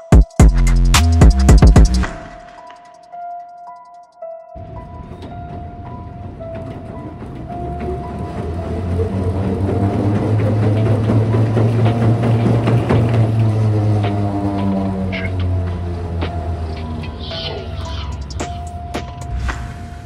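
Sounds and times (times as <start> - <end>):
treadmill belt hum: 4.6 - 16.9.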